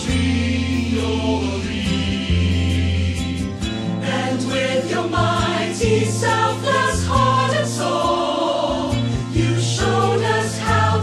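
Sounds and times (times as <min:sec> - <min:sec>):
sustained accompaniment with bass: 0:00.0 - 0:11.0
voices singing slow religious song: 0:00.0 - 0:11.0.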